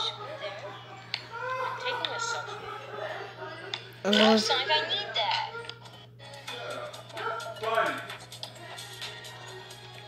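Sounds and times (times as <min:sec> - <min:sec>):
voices from a video: 0:00.0 - 0:09.3
background music: 0:00.0 - 0:10.0
low electrical hum: 0:00.0 - 0:10.0.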